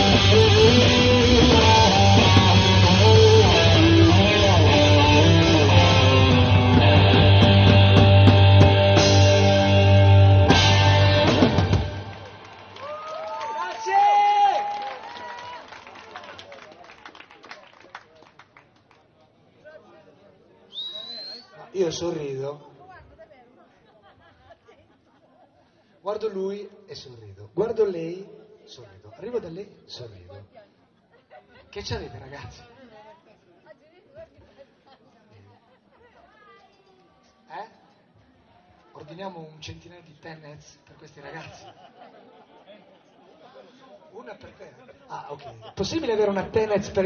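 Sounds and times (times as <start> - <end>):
rock band song: 0.0 - 12.7
electric guitar lead: 0.0 - 12.8
keyboard: 0.0 - 12.8
drums: 0.0 - 13.0
crowd voices: 0.0 - 13.7, 41.4 - 45.7
scattered clapping: 11.6 - 19.2
short rising whistle: 20.8 - 21.6.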